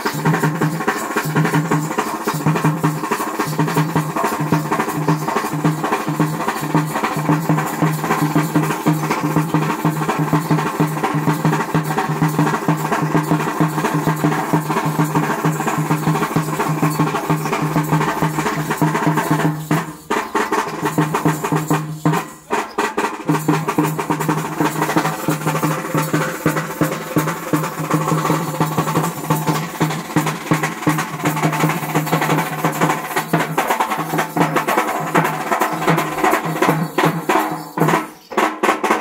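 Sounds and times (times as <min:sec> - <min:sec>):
fast stick drumming on barrel drums: 0:00.0 - 0:39.0.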